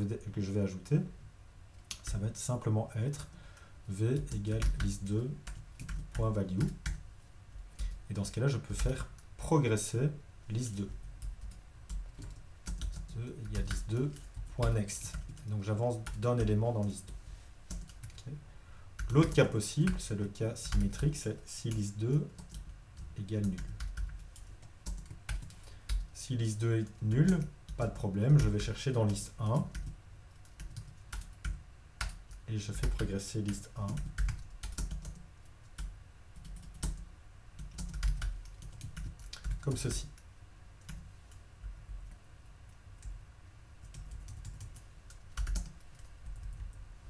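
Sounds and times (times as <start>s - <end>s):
computer keyboard keystrokes: 4.2s - 7.0s, 11.2s - 18.3s, 19.0s - 20.0s, 22.4s - 26.1s, 27.2s - 37.0s, 37.6s - 40.2s, 43.8s - 46.8s.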